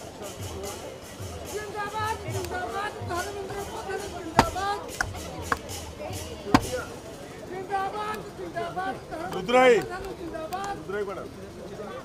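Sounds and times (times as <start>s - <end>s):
sharp knocks: 3.4s - 5.7s, 6.5s - 6.9s.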